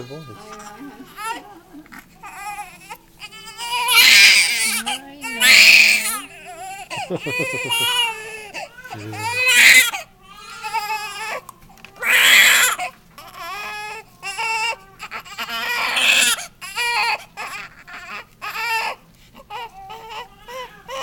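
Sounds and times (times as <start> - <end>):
newborn baby crying: 0.0 - 21.0.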